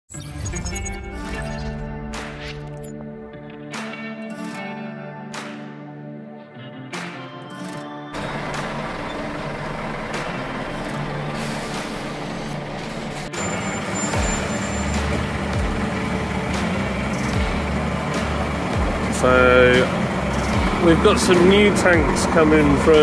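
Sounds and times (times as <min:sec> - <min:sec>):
diesel engine rumbling at low revs: 0:08.2 - 0:23.0.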